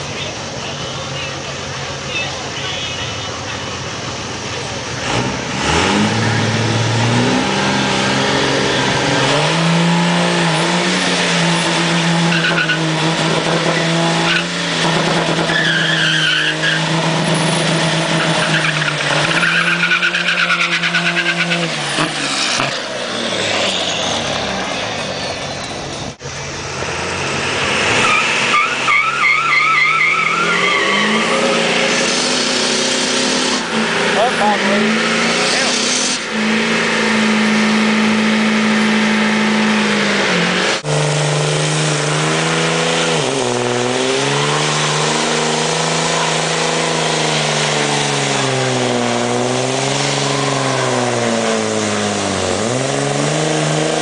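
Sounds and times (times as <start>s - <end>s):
tyres squealing on pavement: 0.0s - 26.3s, 27.9s - 39.9s
diesel engine revving: 0.0s - 54.0s.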